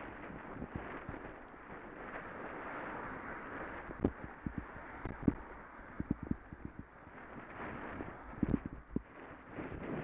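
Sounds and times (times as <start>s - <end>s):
wind hiss: 0.0s - 10.0s.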